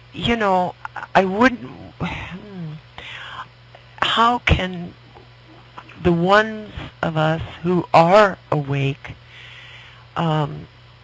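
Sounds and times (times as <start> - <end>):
steady hum: 0.0 - 11.0
person breathing: 3.0 - 4.0, 9.2 - 10.1.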